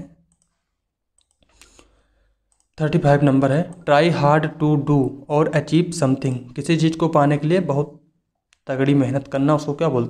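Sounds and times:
computer mouse clicks: 0:00.3 - 0:00.6, 0:01.2 - 0:01.9, 0:02.5 - 0:02.8.

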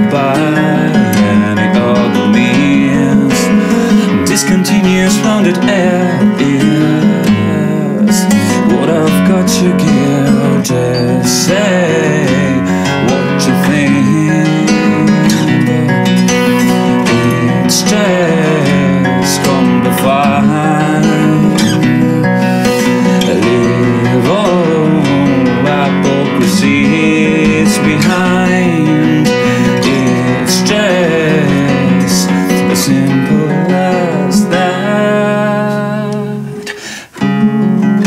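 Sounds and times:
classical guitar plucked and strummed: 0:00.0 - 0:38.0.

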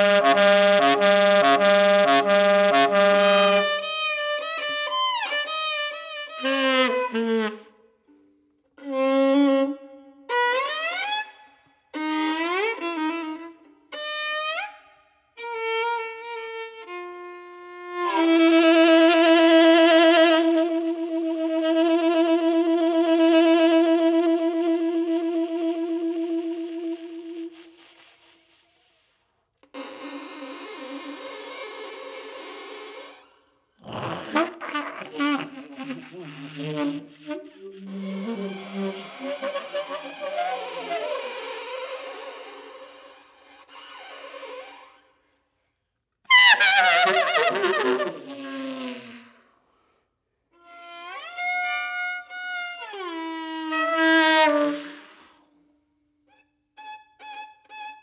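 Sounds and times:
improvised violin music: 0:00.0 - 0:27.8, 0:29.6 - 0:33.4, 0:34.3 - 0:45.3, 0:50.6 - 0:55.2, 0:56.7 - 0:58.0.

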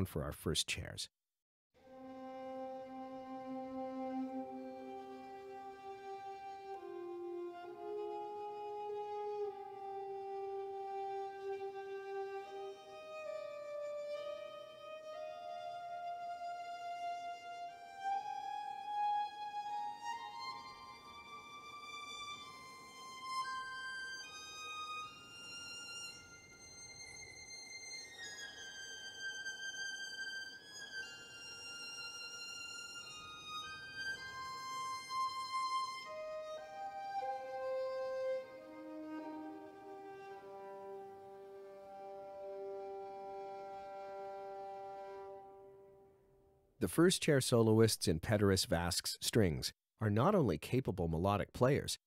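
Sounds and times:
soft solo violin melody: 0:01.8 - 0:46.1.

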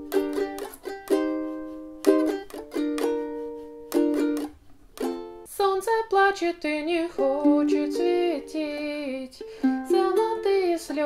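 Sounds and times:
ukulele strumming: 0:00.0 - 0:11.0
woman singing: 0:05.5 - 0:11.0.

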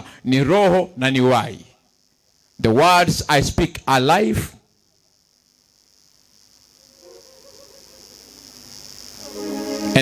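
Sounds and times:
high insect buzz: 0:00.0 - 0:10.0.

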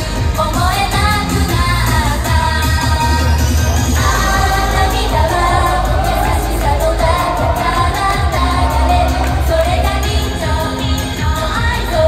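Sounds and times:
pop backing track with beat: 0:00.0 - 0:12.0
women singing: 0:00.3 - 0:12.0.

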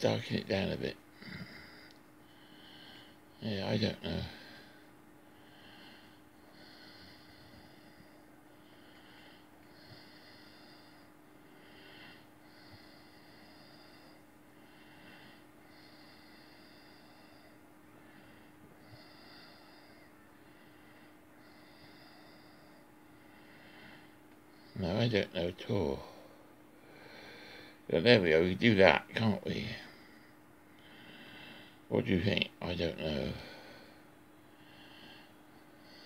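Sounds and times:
low steady hum: 0:00.0 - 0:36.0.

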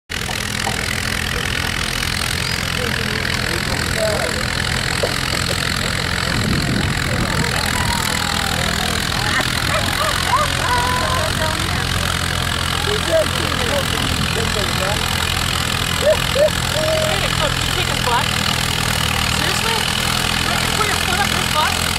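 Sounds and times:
tractor engine idling: 0:00.1 - 0:21.9
chatter of voices: 0:00.8 - 0:21.9.

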